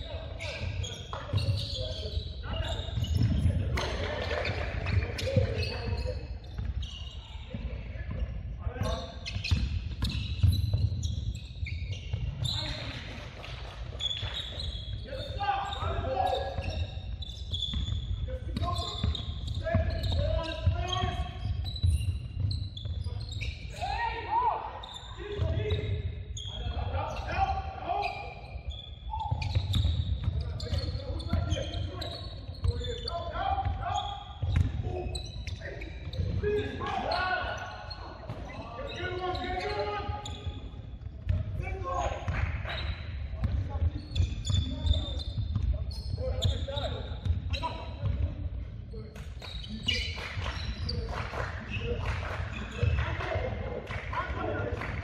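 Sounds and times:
voices calling out indistinctly: 22.8s - 40.7s.

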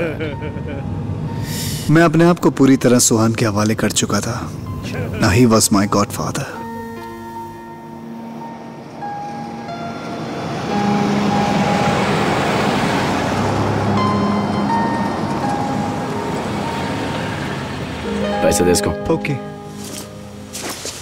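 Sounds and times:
background music with held notes: 0.0s - 21.0s
car driving past: 8.0s - 18.4s.

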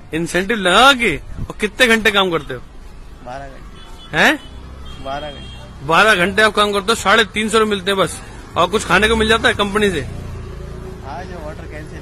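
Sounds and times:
road vehicles rumbling: 0.0s - 12.0s.

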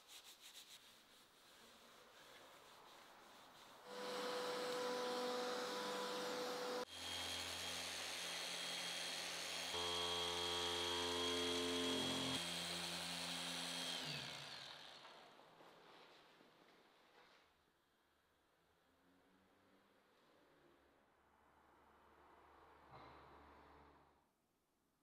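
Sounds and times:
polisher motor whine: 3.9s - 15.2s.

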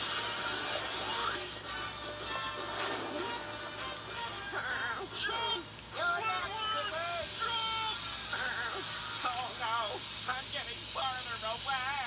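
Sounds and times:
cartoon music from a tv: 0.0s - 6.9s, 7.5s - 9.4s
steady hiss: 0.0s - 12.0s.

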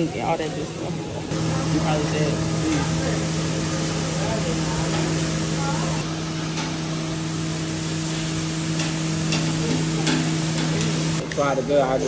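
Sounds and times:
kitchen hum: 0.0s - 12.0s
food sizzling on a griddle: 1.3s - 11.2s.

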